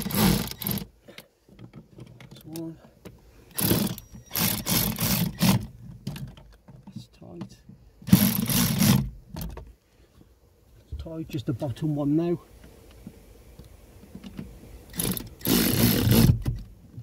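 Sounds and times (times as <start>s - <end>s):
cordless ratchet wrench running: 3.5s - 5.6s, 8.1s - 9.0s, 14.9s - 16.4s.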